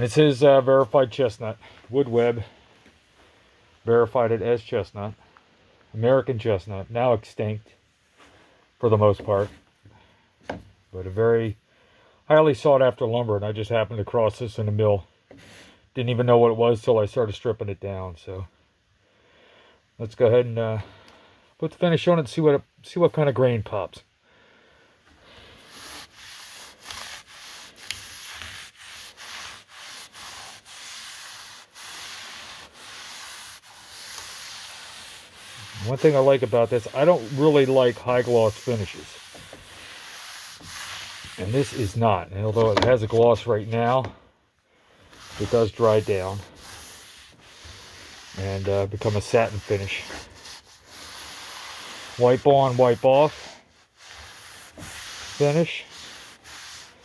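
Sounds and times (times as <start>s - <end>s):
cloth rag rubbing wood: 0.0s - 5.1s, 25.1s - 44.2s, 44.9s - 57.0s.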